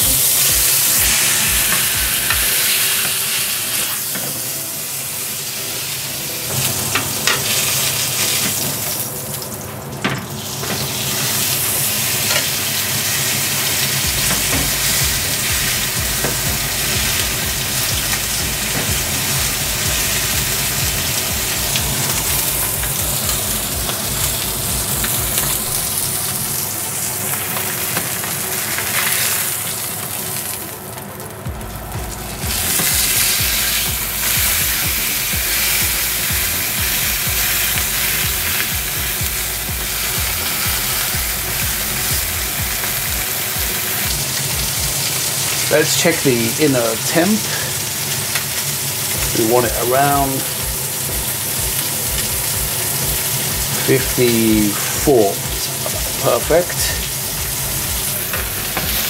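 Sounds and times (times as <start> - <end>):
steak sizzling in a grill pan: 0.0 - 59.0.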